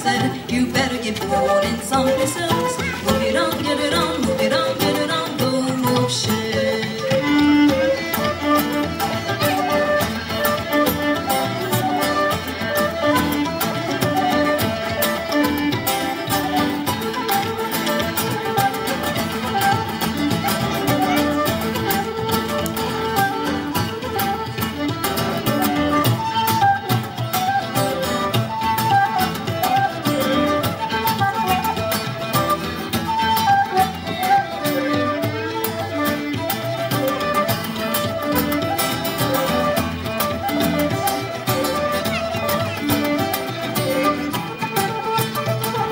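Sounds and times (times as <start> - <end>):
fiddle melody: 0.0 - 45.9
frame drum beat: 0.0 - 45.9.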